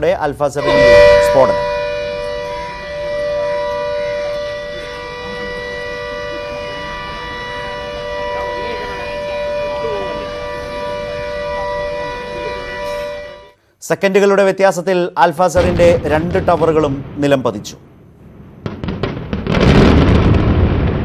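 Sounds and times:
steady warning siren: 0.6s - 13.7s
faint voices: 4.4s - 13.5s.

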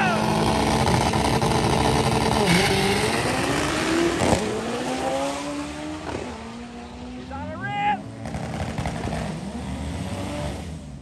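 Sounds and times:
race car engine at full throttle: 0.0s - 11.0s.

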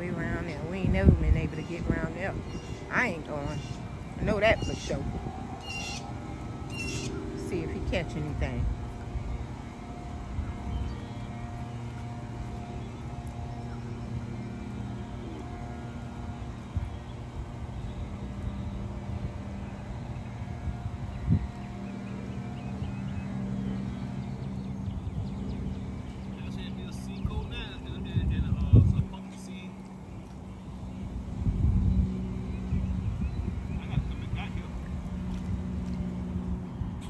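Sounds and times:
distant engine drone: 0.0s - 37.0s.

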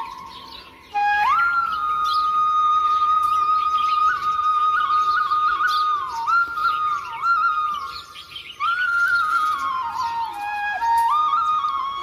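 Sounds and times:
bamboo flute melody: 0.0s - 12.0s
birdsong chirps: 0.0s - 12.0s.

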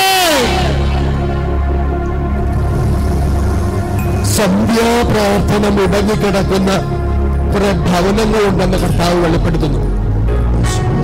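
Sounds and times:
held accompaniment chords with bass: 0.0s - 11.0s.

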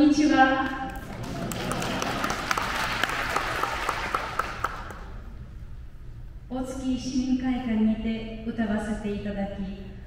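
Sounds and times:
audience applauding: 0.9s - 5.2s.

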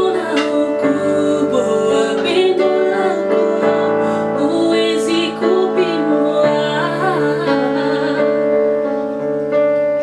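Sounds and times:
woman singing gospel song: 0.0s - 8.4s
keyboard playing sustained chords: 0.0s - 10.0s.

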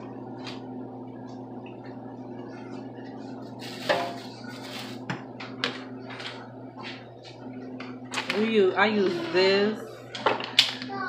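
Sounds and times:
steady background hum: 0.0s - 11.0s
paper bag rustling: 3.5s - 5.1s.

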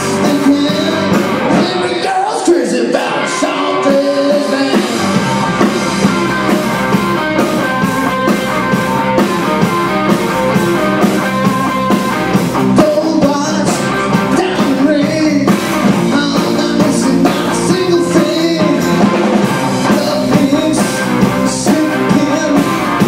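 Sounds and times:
person singing: 0.0s - 5.2s, 12.7s - 23.0s
drum kit: 0.0s - 23.0s
electric guitars: 0.0s - 23.0s.

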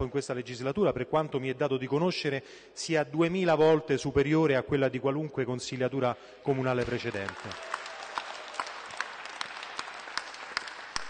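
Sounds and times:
sharp hand clap: 6.8s - 11.0s
small group applauding: 6.8s - 11.0s.

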